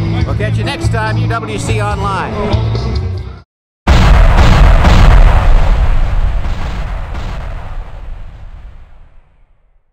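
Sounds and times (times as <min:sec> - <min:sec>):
deep rumbling explosion boom: 0:03.9 - 0:09.9.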